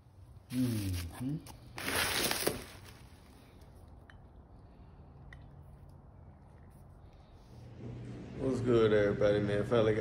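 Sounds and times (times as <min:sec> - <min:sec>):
bubble wrap crinkling: 0:00.5 - 0:03.4.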